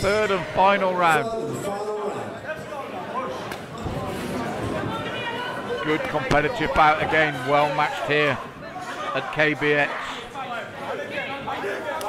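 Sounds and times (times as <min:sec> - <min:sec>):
voices calling out in hall: 0:00.0 - 0:12.0.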